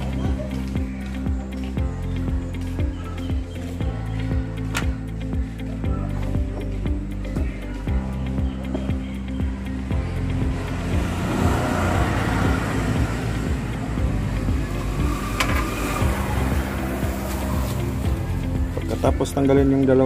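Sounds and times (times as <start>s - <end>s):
background music: 0.0s - 20.0s
motor vehicle passing: 10.1s - 19.0s.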